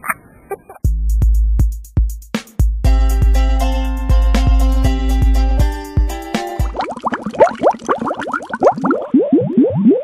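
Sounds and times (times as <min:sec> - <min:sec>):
cartoon bubble bloops: 0:06.6 - 0:10.0.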